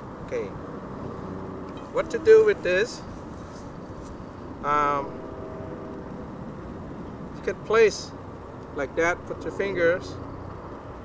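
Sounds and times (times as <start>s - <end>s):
outdoor rumble and hiss: 0.0s - 11.0s.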